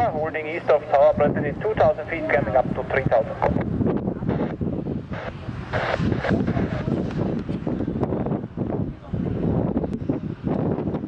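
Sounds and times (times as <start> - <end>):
jet engine noise: 0.0 - 11.0
wind buffeting microphone: 0.0 - 11.0.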